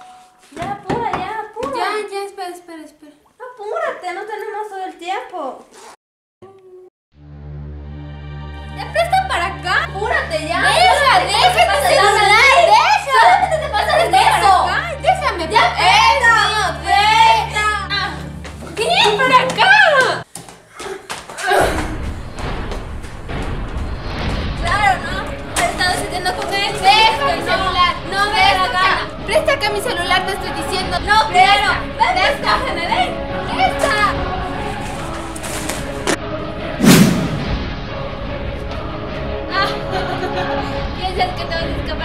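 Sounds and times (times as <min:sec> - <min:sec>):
background music: 0:07.2 - 0:20.3, 0:21.5 - 0:42.0
booming impact: 0:21.8 - 0:26.2, 0:36.8 - 0:38.2
steady low noise: 0:36.7 - 0:38.6.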